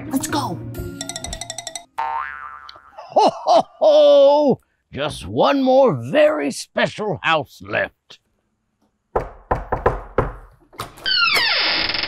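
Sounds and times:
knocking on a door: 9.1 - 10.5.

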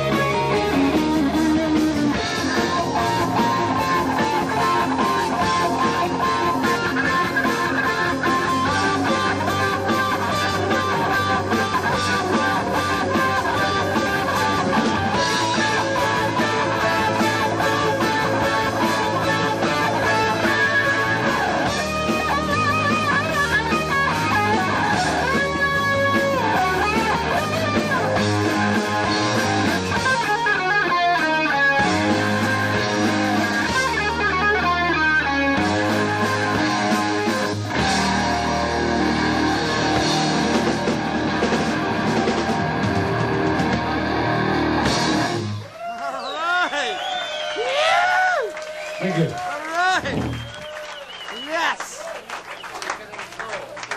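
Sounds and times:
electric guitar lead lines: 0.0 - 45.7
bass guitar: 0.0 - 45.9, 48.0 - 50.9
drums: 0.0 - 53.9.

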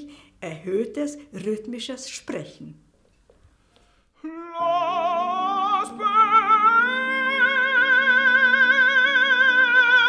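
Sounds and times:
man singing high sustained note: 4.2 - 10.0.

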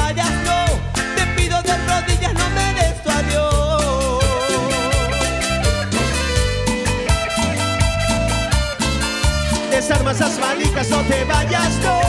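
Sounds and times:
live band playing instrumental: 0.0 - 12.0.

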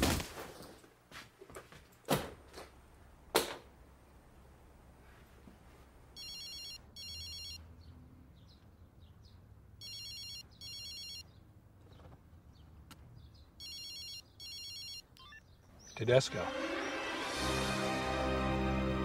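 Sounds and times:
cell phone ringing: 6.2 - 7.6, 9.8 - 11.3, 13.6 - 15.4.

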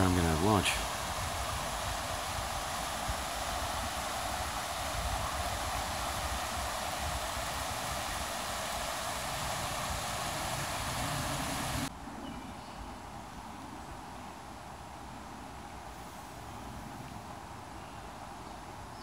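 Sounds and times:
creek water rushing over rocks: 0.0 - 11.9.

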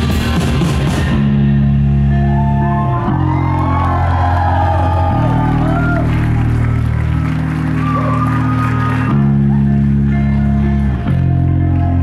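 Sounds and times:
live band holding chords: 0.0 - 12.0
crowd whooping and cheering: 2.0 - 12.0.

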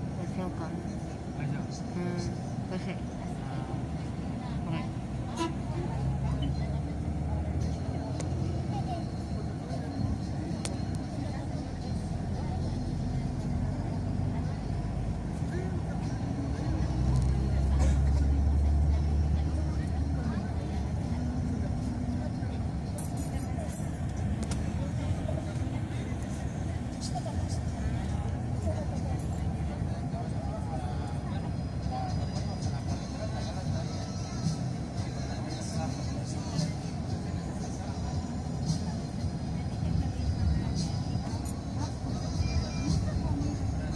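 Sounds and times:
vehicle engine and road noise: 0.0 - 43.9.

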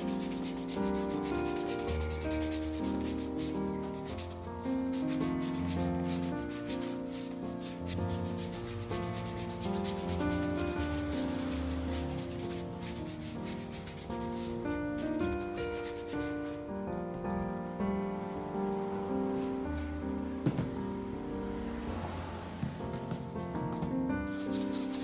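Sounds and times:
cloth rubbing leather shoe sole: 0.0 - 16.6, 22.9 - 25.0
background music with held notes: 0.0 - 25.0.

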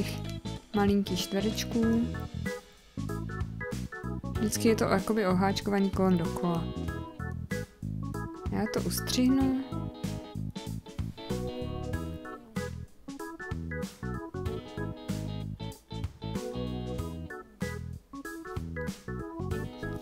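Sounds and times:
instrumental music with keyboard chords: 0.0 - 20.0.

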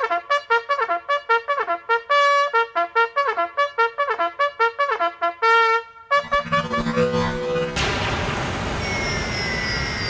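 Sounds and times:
thin high gliding tones: 6.2 - 7.9
synthetic whoosh: 6.2 - 9.6.

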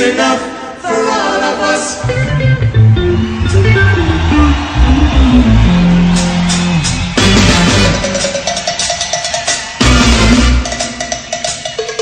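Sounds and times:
bass guitar line: 2.0 - 8.7, 9.8 - 10.7
live reggae band playing: 2.0 - 12.0.

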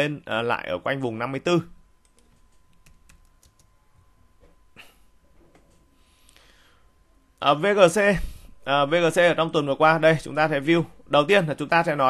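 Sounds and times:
keyboard typing: 2.0 - 3.7.

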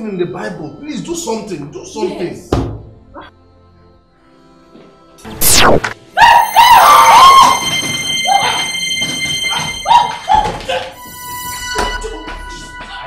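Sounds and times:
sharp whoosh: 5.4 - 6.0.

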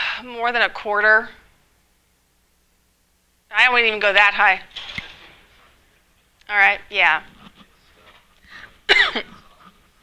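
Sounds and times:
woman clearing her throat: 8.9 - 9.4.

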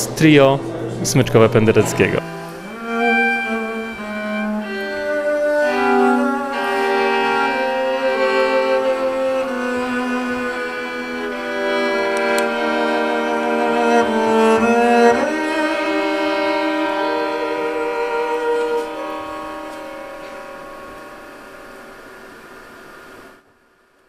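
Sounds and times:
double bass and violin playing: 0.0 - 21.8.

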